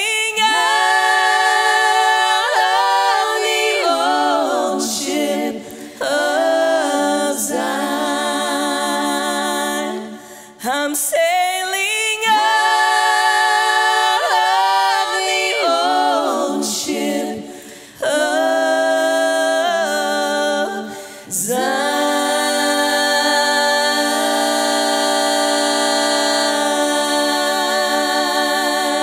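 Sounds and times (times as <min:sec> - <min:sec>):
women singing a cappella harmony: 0:00.0 - 0:29.0.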